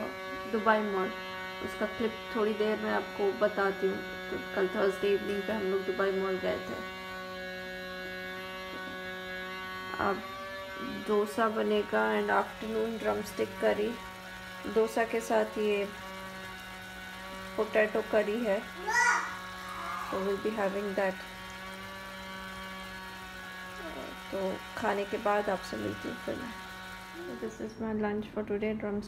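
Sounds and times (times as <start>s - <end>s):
electrical hum: 0.0s - 29.0s.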